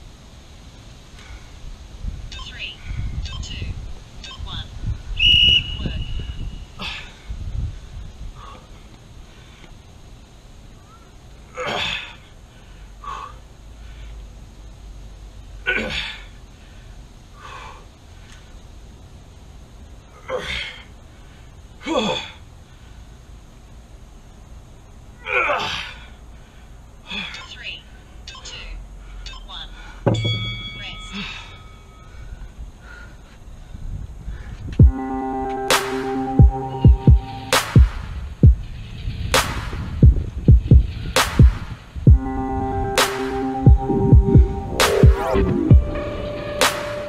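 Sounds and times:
man breathing hard: 0:06.7 - 0:09.8, 0:11.7 - 0:14.4, 0:15.9 - 0:18.6, 0:31.0 - 0:34.8.

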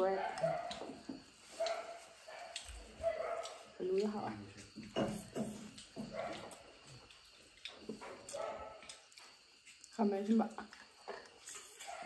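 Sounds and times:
faint eating clicks: 0:01.6 - 0:04.6, 0:05.7 - 0:12.0.

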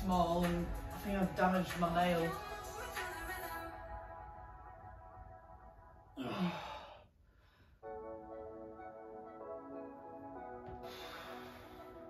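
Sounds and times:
soft background music: 0:00.0 - 0:06.7, 0:07.8 - 0:12.0
woman sighing breathily: 0:06.2 - 0:07.1.

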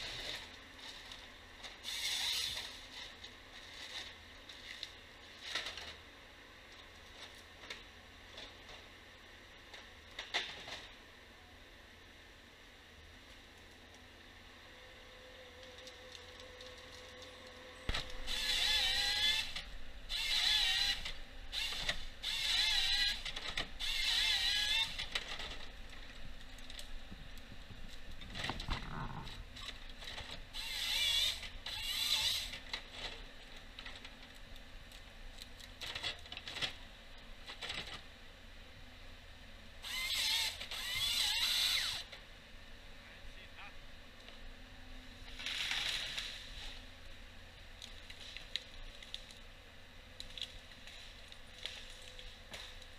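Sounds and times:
hydraulic whining: 0:01.8 - 0:03.2, 0:15.5 - 0:34.2, 0:39.8 - 0:42.2.

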